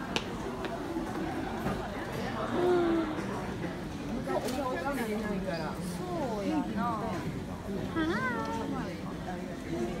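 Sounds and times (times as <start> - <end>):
crowd hubbub: 0.0 - 10.0.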